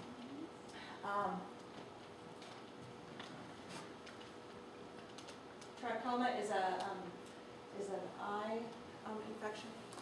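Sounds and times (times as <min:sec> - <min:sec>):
woman speaking: 0:01.0 - 0:01.5, 0:05.8 - 0:07.2, 0:07.8 - 0:09.8.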